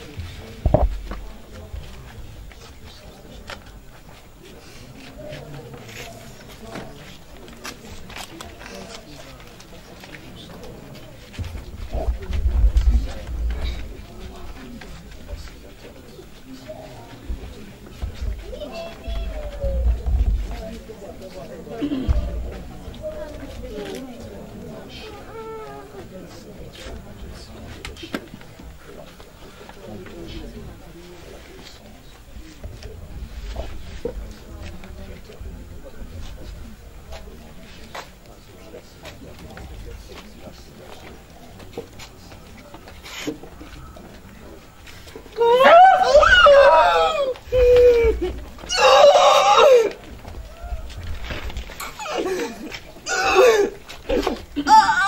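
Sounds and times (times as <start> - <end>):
murmuring voices: 0.0 - 55.0
woman wailing: 54.6 - 55.0.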